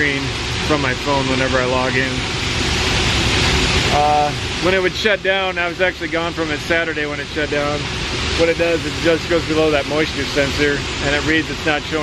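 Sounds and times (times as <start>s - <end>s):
heater fans rushing: 0.0s - 12.0s.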